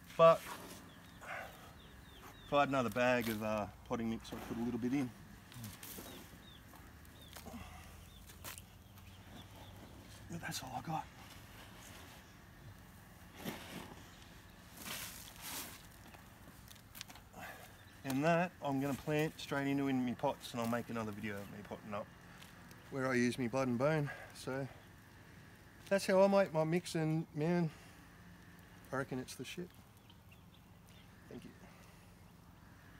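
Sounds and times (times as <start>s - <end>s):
hands rustling through potting mix: 0.0s - 25.0s
faint bird chirping: 0.0s - 32.9s
low background hum: 0.0s - 32.9s.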